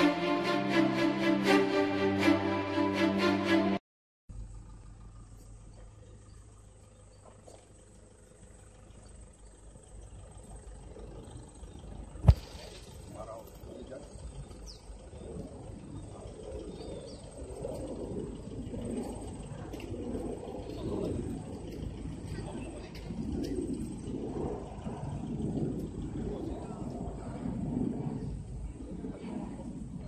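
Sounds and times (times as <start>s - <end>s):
steady low rumble: 0.0s - 30.0s
people talking outdoors: 9.8s - 16.7s.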